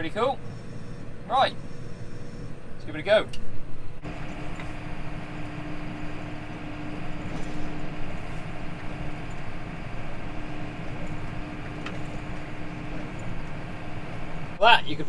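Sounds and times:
constant hum: 0.0 - 15.0
tractor engine drone: 0.0 - 15.0.

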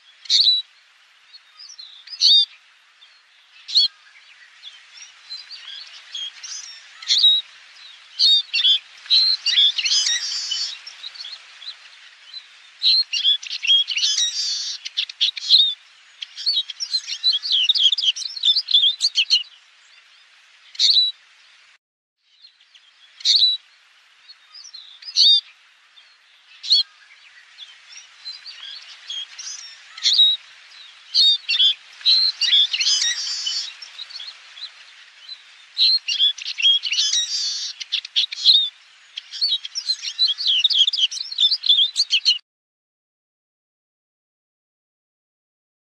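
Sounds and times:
birds twittering and chirping: 0.0 - 42.4.

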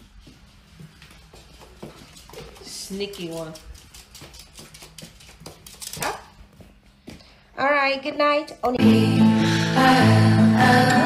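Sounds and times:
dog claws clicking on hardwood: 1.6 - 6.3.

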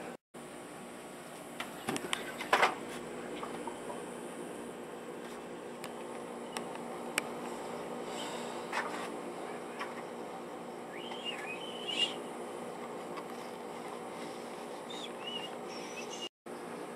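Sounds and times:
machine hum: 0.0 - 16.9.

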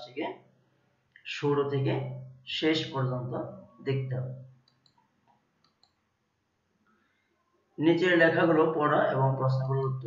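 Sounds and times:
man speaking: 1.2 - 4.5, 7.8 - 10.0.

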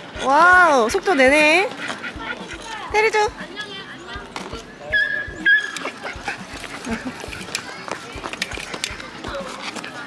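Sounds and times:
small dog whining: 4.9 - 6.4.

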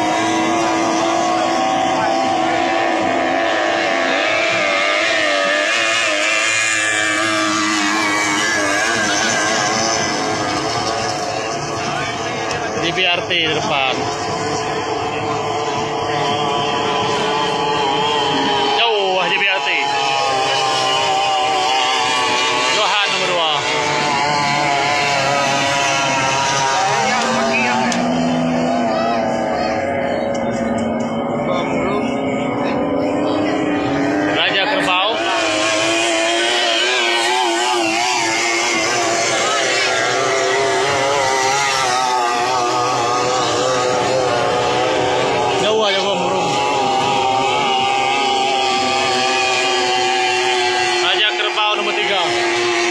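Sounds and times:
racing outboard engines running: 0.0 - 52.9.

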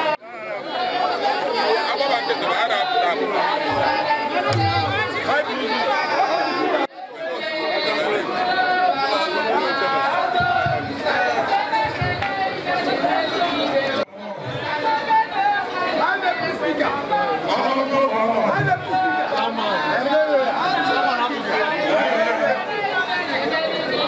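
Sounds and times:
crowd talking: 0.0 - 24.0.

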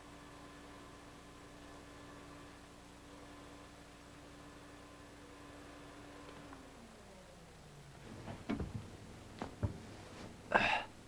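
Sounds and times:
person breathy vocal sound: 10.5 - 11.0.

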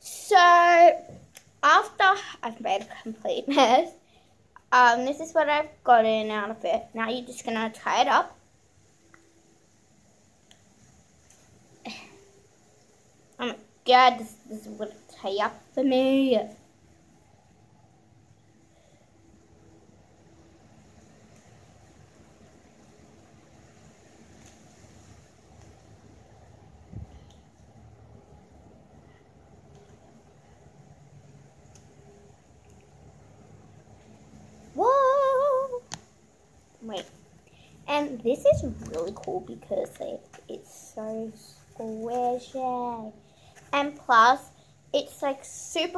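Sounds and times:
faint background noise: 0.0 - 45.9
girl's high-pitched whine: 34.8 - 35.9.

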